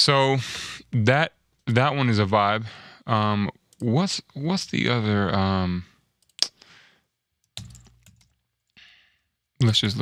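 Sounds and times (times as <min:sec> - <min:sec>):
computer keyboard keystrokes: 0:07.4 - 0:08.4.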